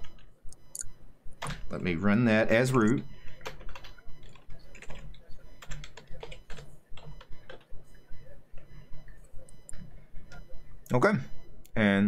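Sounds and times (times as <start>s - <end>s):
keyboard typing: 0.0s - 1.6s, 2.6s - 7.8s
steady low hum: 0.0s - 12.0s.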